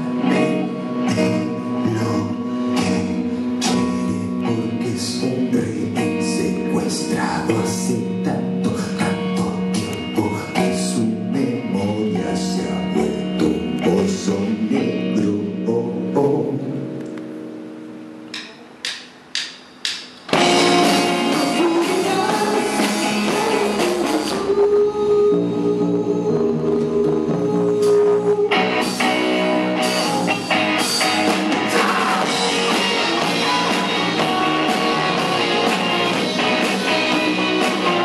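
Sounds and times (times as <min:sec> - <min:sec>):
drum kit: 0:00.0 - 0:05.4, 0:18.3 - 0:25.0, 0:26.3 - 0:38.0
electric guitar: 0:00.0 - 0:18.8, 0:20.3 - 0:38.0
electric guitar chord ringing: 0:20.3 - 0:24.1, 0:28.5 - 0:38.0.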